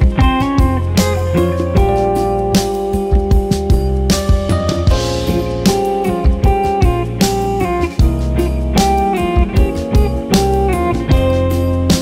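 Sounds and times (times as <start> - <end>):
bass and drum kit beat: 0.0 - 12.0
electric guitar: 0.0 - 12.0.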